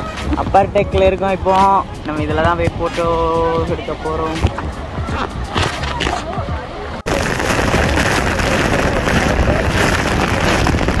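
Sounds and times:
passengers talking: 0.0s - 7.2s
waterfall rushing: 6.7s - 11.0s.

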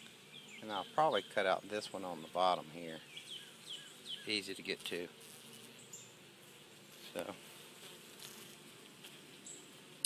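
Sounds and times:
honey bees buzzing: 0.0s - 10.0s.

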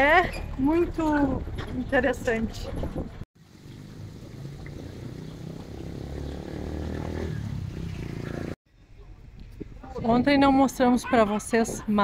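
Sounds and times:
vehicle engine rumble: 0.0s - 10.1s.

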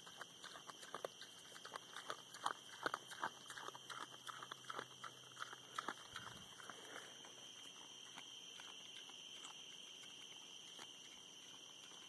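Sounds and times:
hog crunching and chewing corn: 0.0s - 12.0s.

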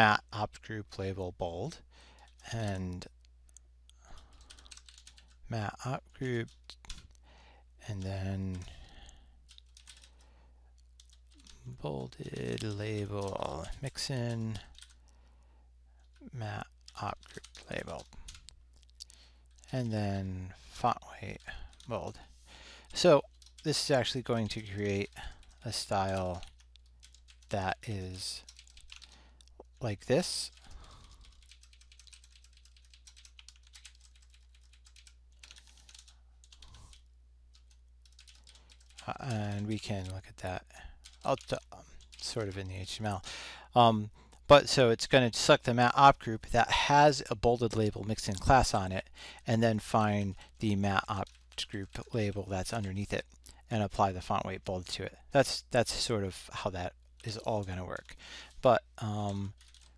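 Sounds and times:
computer keyboard typing: 4.1s - 5.4s, 6.4s - 7.2s, 8.5s - 15.1s, 16.0s - 19.7s, 21.2s - 22.2s, 22.9s - 27.8s, 28.4s - 43.2s, 49.7s - 53.4s, 59.0s - 59.9s.

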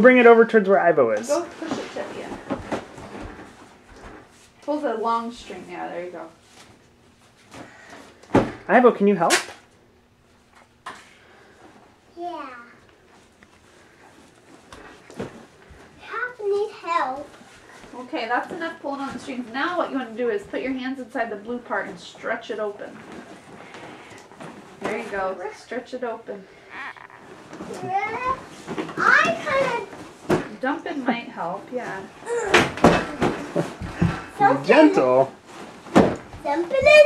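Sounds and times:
person speaking: 26.7s - 28.3s.

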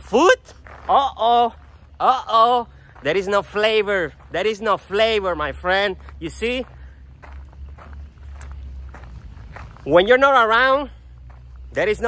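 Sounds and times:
footsteps on concrete: 0.4s - 12.0s.

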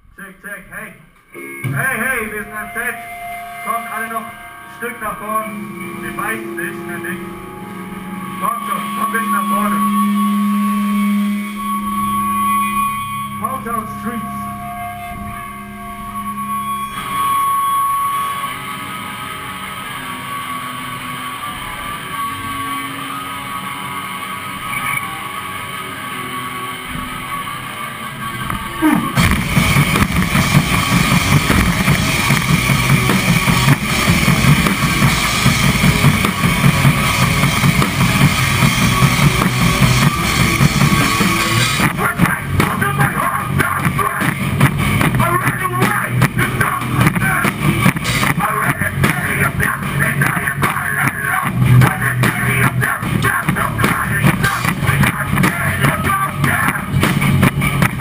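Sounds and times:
hardcore band playing live: 1.4s - 26.7s, 28.3s - 58.0s.

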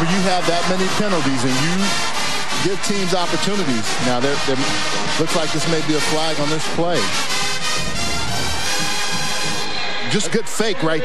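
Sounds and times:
marching band brass playing: 0.0s - 10.0s.

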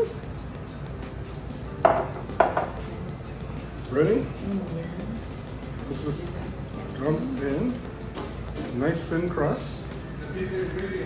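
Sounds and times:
glass bottles clinking on table: 1.8s - 3.2s.

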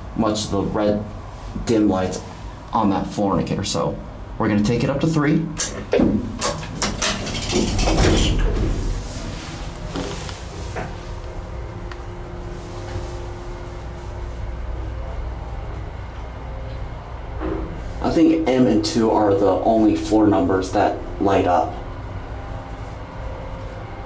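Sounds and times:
elevator motor humming and whining: 0.0s - 24.0s
elevator doors sliding shut: 5.6s - 11.7s.

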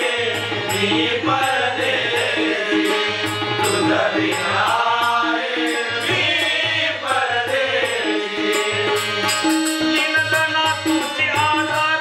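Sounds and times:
several voices singing: 0.0s - 11.7s
harmonium: 0.0s - 12.0s
tabla: 0.0s - 12.0s.

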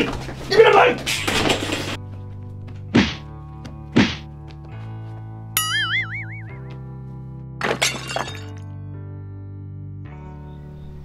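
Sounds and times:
background music: 0.0s - 11.0s
heavy thunks of blows: 2.9s - 4.3s.

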